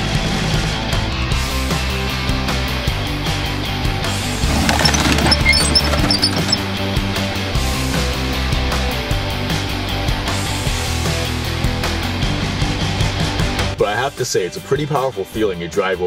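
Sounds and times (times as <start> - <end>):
car being crushed: 4.5 - 6.6.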